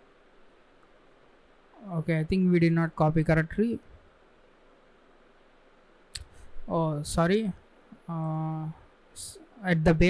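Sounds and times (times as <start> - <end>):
steady room hiss: 0.0 - 10.0
man's voice: 6.7 - 10.0.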